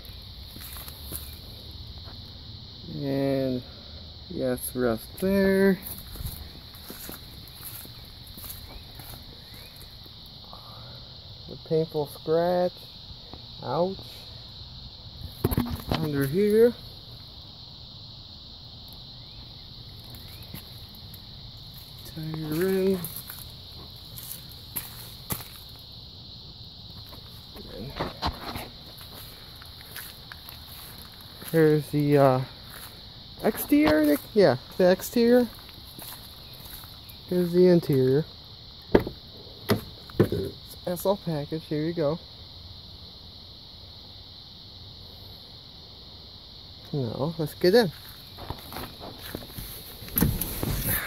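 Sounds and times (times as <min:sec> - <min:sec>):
insects droning: 0:00.0 - 0:51.0
rustling and shuffling: 0:05.8 - 0:10.0, 0:20.0 - 0:25.8, 0:26.9 - 0:38.1, 0:47.9 - 0:51.0.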